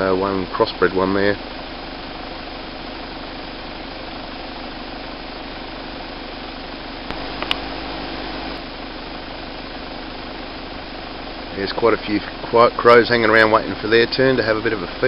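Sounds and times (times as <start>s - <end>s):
vehicle engine idling: 0.0s - 15.0s
sharp clicks: 7.1s - 7.7s.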